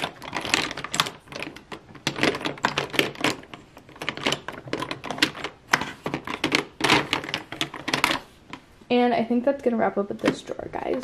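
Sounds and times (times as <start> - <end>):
plastic makeup items clacking: 0.0 - 8.7.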